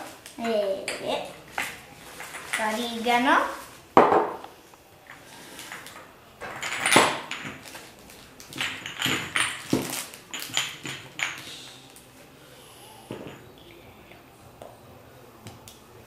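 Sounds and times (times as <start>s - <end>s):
glass jars clinking: 5.6s - 11.6s.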